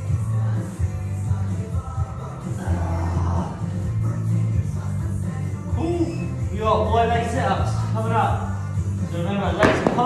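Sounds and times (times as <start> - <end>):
pop music with singing: 0.0 - 10.0.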